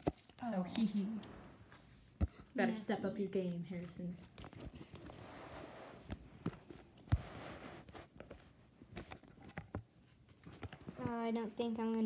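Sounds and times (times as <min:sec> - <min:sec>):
playing cards rustling: 0:03.4 - 0:11.3.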